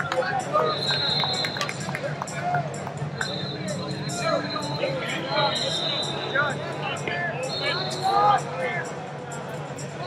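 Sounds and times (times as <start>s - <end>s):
crowd voices and chatter: 0.0s - 10.0s.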